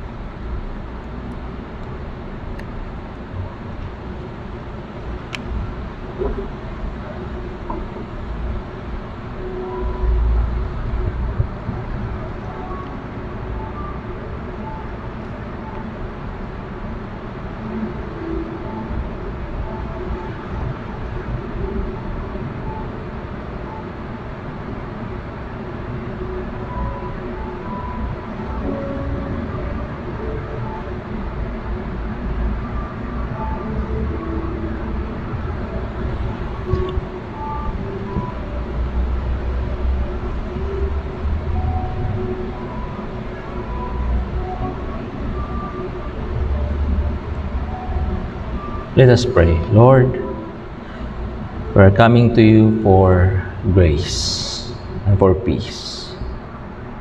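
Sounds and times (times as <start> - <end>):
quiet instrumental music: 0.0 - 57.0
room noise rumble and hiss: 0.0 - 57.0.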